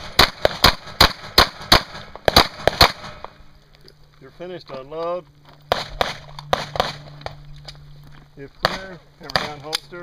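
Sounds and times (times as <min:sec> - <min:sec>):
steady low hum: 0:00.0 - 0:10.0
handgun metallic clicks: 0:08.6 - 0:10.0.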